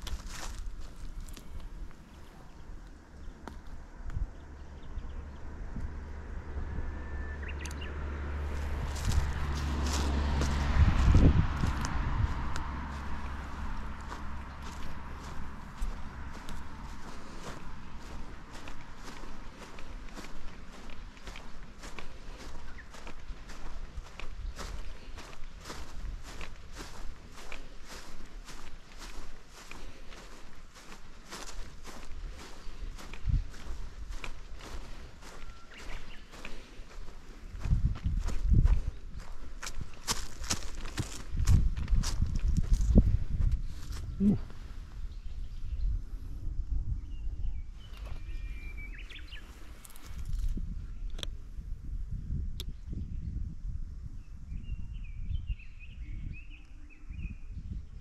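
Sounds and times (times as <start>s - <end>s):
footsteps on dry grass: 0.0s - 4.0s, 8.3s - 45.6s, 47.8s - 50.7s
low rumble: 0.0s - 55.2s.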